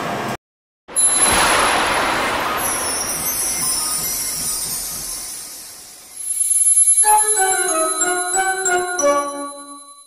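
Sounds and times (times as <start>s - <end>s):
whoosh with falling hiss: 1.0s - 6.4s.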